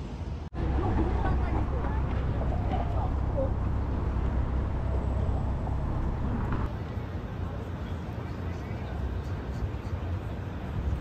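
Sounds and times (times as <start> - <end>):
traffic rumble: 0.4 - 11.0
faint voices of passers-by: 0.6 - 11.0.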